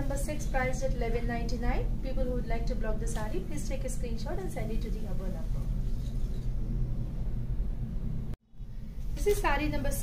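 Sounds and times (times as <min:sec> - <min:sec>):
low background rumble and hum: 0:00.0 - 0:10.0.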